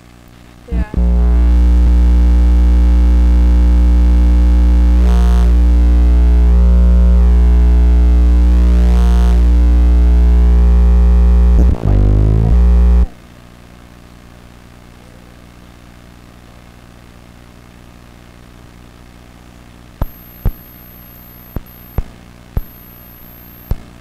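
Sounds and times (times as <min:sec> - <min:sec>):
loud electronic drone hum: 0:00.0 - 0:13.2, 0:20.0 - 0:22.0, 0:22.6 - 0:23.8.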